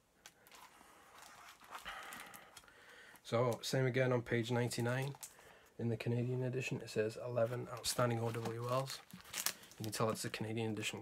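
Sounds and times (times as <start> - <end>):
book pages rustling: 0.4 - 2.6, 7.4 - 10.3.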